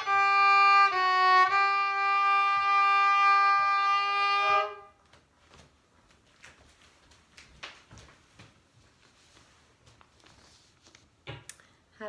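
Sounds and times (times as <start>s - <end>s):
fiddle long bowed note: 0.0s - 5.0s.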